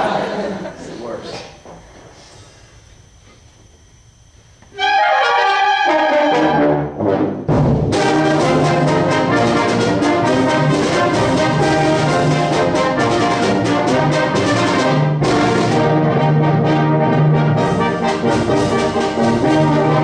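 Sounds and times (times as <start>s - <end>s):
concert band playing: 4.8s - 20.0s.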